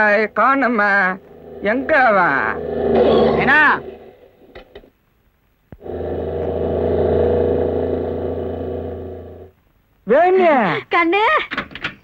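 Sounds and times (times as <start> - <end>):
car driving past: 1.2 - 4.4, 5.8 - 9.5.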